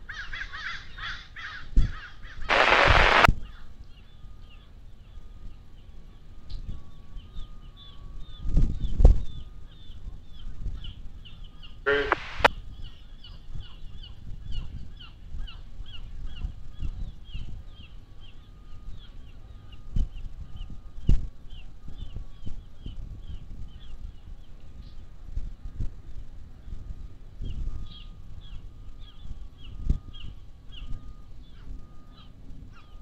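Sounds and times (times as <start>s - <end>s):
bird chirping: 11.3s - 12.5s
honk-like call: 11.9s - 12.5s.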